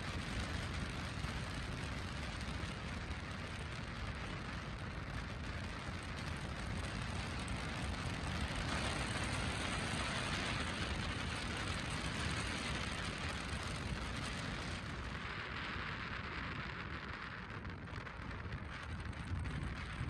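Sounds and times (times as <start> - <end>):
wind noise: 0.0 - 20.0.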